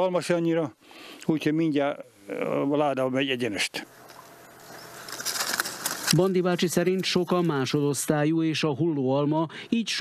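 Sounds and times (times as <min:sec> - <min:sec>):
soft rustling hiss: 0:00.3 - 0:07.9.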